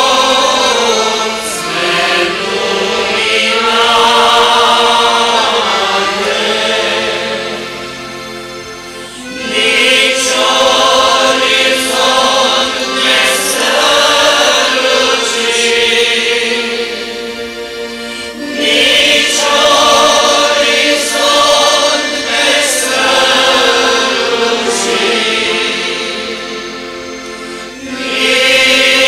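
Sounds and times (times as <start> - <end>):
congregation singing a hymn: 0.0 - 29.0.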